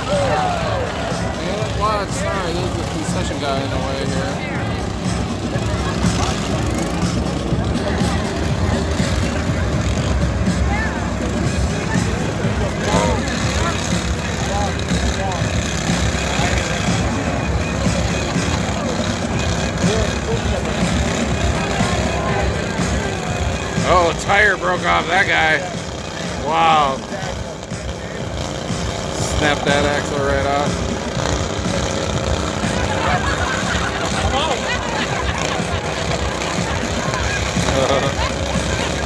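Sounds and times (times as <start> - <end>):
crowd voices: 0.0 - 39.0
small engines revving: 0.0 - 39.0.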